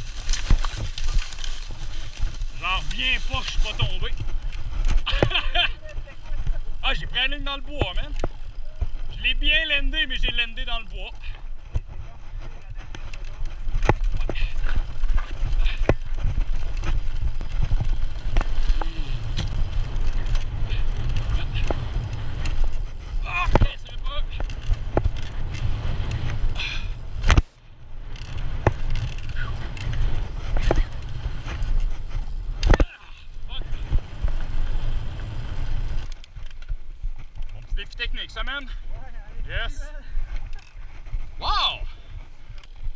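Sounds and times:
bike frame and chain rattling: 0.0 - 39.2
bike tyres rumbling: 0.0 - 42.9
wind on microphone: 11.5 - 36.1
sharp knocks over bumps: 12.8 - 27.6, 28.2 - 33.0.

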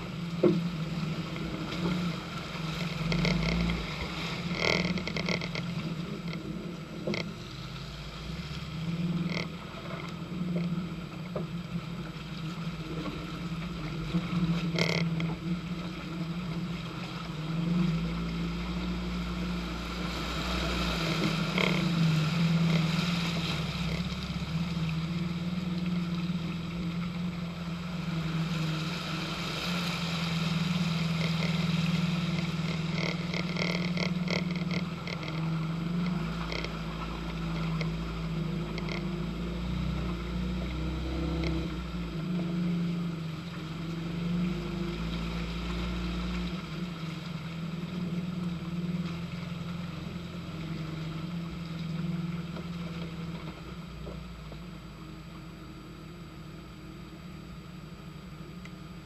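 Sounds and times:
car engine running: 0.0 - 59.0.

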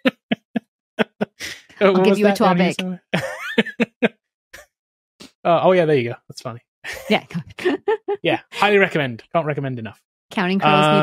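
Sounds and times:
person laughing: 0.0 - 4.1, 6.9 - 9.0, 10.6 - 11.0.

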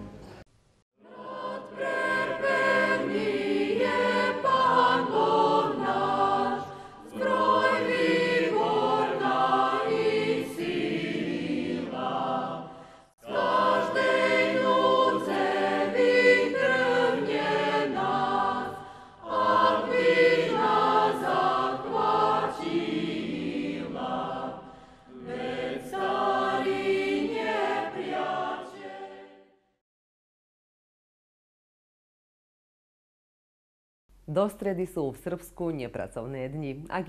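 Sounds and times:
choir singing: 1.0 - 29.7.

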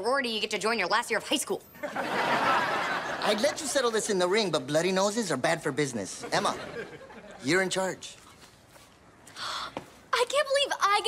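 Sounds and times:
excited talking: 10.2 - 11.0.

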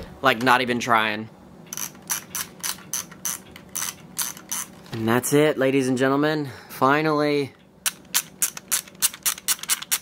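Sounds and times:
camera thumbwheel ratcheting clicks: 1.7 - 4.7, 7.9 - 10.0.

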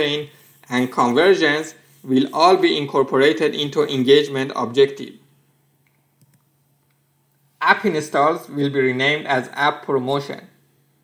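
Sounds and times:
man speaking: 0.0 - 5.3, 7.6 - 10.6.

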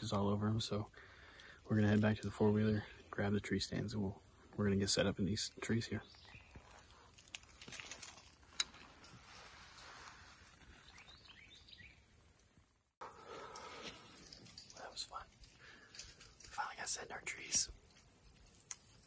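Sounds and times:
woodland ambience: 0.0 - 19.0.

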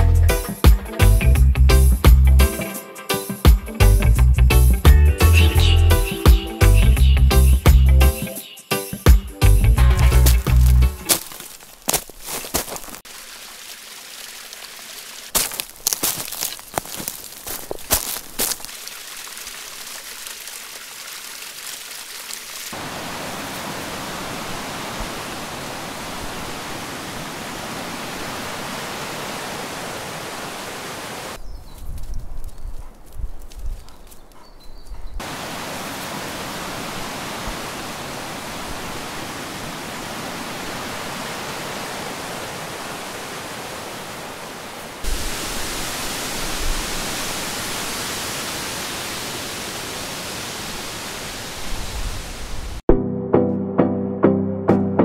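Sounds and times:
river water rushing over rocks: 22.7 - 31.4, 35.2 - 51.8.

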